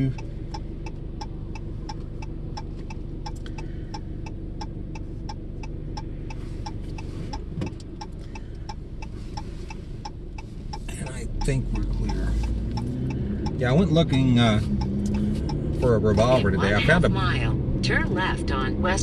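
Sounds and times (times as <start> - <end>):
car engine idling: 0.0 - 19.0
turn signal ticking: 0.0 - 19.0.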